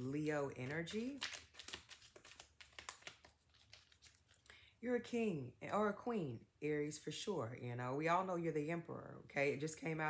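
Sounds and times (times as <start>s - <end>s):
cards rustling and flicking: 0.2s - 4.4s.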